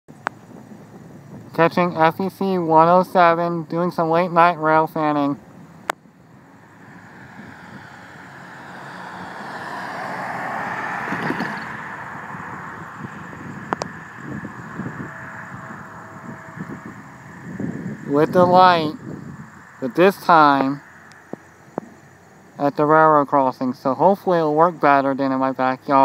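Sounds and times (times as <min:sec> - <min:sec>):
passing vehicle tyre noise: 0:00.1 - 0:24.9.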